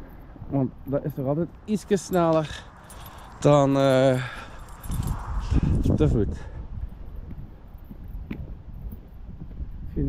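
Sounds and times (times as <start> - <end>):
wind rumbling on microphone: 2.4 - 10.0.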